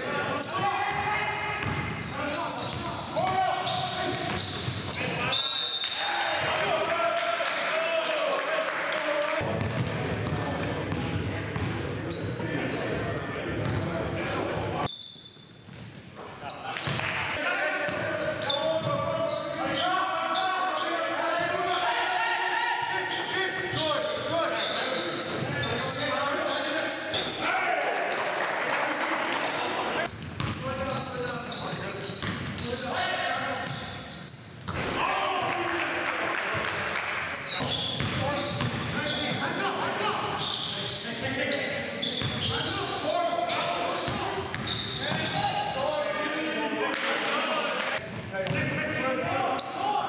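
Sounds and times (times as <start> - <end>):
players' voices echoing: 0.0 - 14.9, 16.2 - 50.0
basketball bouncing on wooden floor: 9.6 - 11.0.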